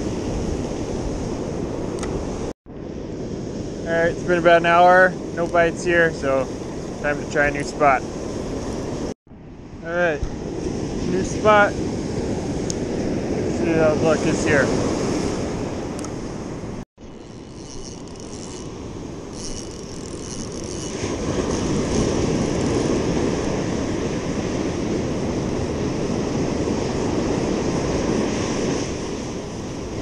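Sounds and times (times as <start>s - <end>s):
ocean surf breaking: 0.0s - 9.1s, 9.8s - 16.8s, 17.5s - 30.0s
wind rumbling on microphone: 0.0s - 30.0s.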